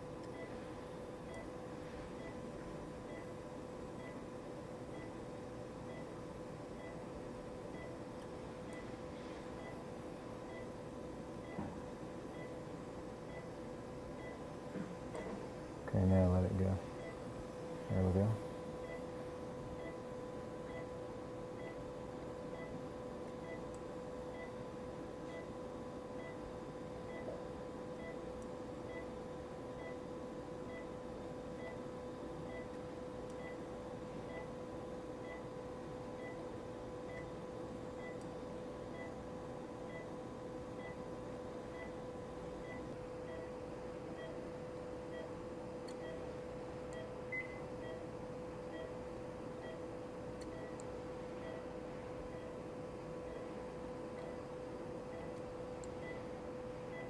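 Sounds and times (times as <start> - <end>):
electrical hum: 0.0 - 57.0
patient monitor pulse beeps: 0.2 - 0.7, 1.3 - 1.5, 2.1 - 3.4, 4.0 - 5.2, 5.9 - 6.2, 6.8 - 7.1, 7.7 - 8.0, 8.7 - 10.8, 11.4 - 12.6, 13.2 - 13.6, 14.2 - 14.5, 15.1 - 15.4, 17.0 - 17.3, 17.9 - 22.8, 23.4 - 31.0, 31.6 - 39.2, 39.8 - 57.0.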